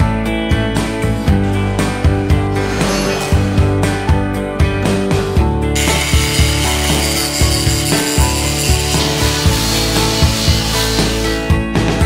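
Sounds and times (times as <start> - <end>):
background music with beat: 0.0 - 12.0
angle grinder polishing metal: 2.5 - 3.8, 5.8 - 11.5.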